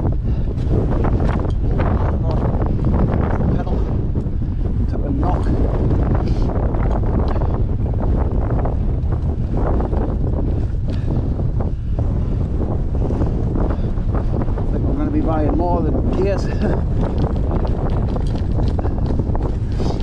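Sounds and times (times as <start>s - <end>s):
bike rattling over rough track: 0.0s - 20.0s
wind buffeting microphone: 0.0s - 20.0s.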